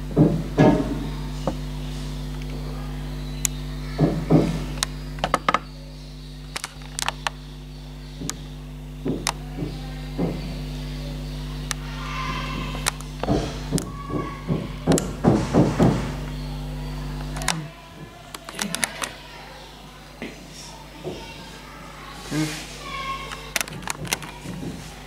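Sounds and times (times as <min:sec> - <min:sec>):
steady low hum: 0:00.0 - 0:25.0
scattered clicks and knocks: 0:03.4 - 0:05.6, 0:06.5 - 0:07.4, 0:08.2 - 0:10.6, 0:12.4 - 0:16.3, 0:23.3 - 0:24.9.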